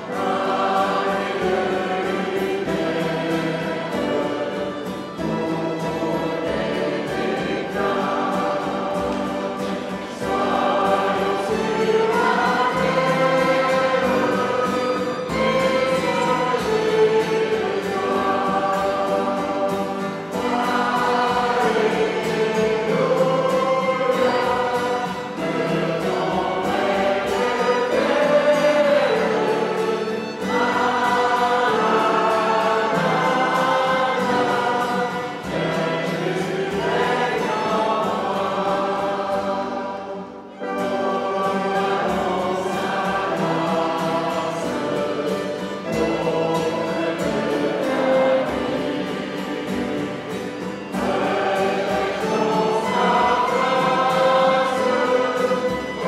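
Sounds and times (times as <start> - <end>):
congregation singing a worship song: 0.0 - 56.0.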